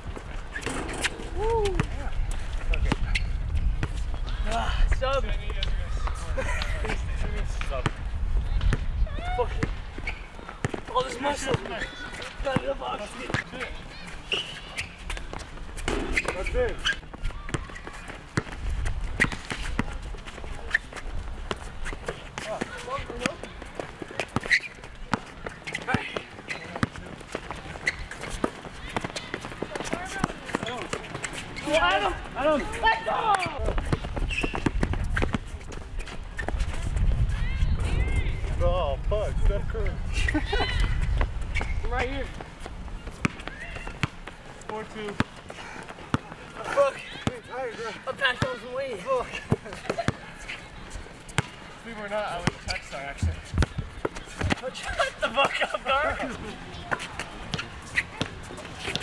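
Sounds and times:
distant voices and shouts: 0:00.6 - 0:03.3, 0:16.1 - 0:18.3, 0:36.3 - 0:39.0, 0:43.0 - 0:59.0
basketball bouncing on asphalt: 0:12.5 - 0:13.5, 0:33.5 - 0:35.9, 0:41.0 - 0:47.6, 0:51.2 - 0:51.6, 0:52.3 - 0:52.6, 0:53.2 - 0:54.7.

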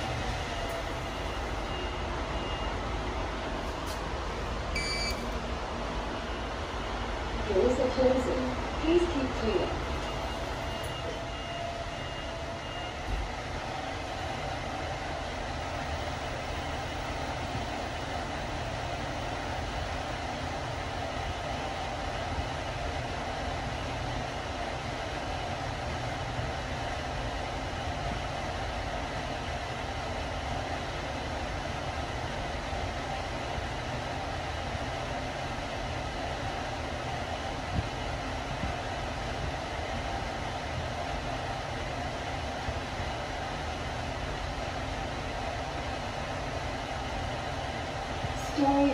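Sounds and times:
lift car rumbling down shaft: 0:00.0 - 0:48.9.

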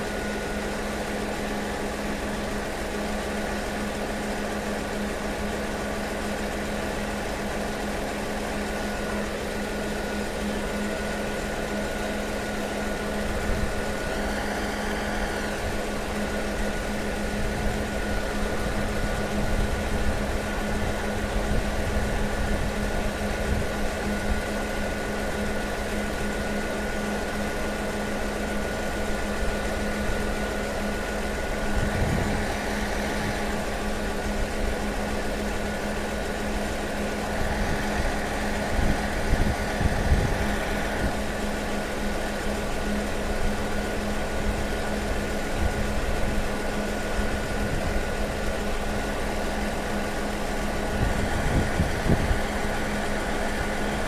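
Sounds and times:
diesel railway engine idling: 0:00.0 - 0:54.0.

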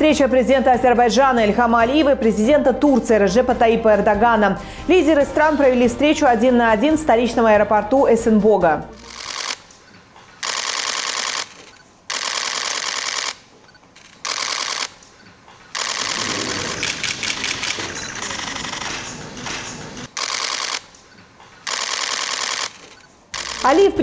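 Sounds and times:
camera shutters firing in bursts: 0:09.0 - 0:23.8.

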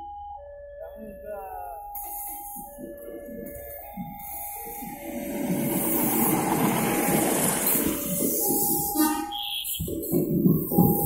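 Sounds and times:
train passing close by: 0:01.6 - 0:11.0.

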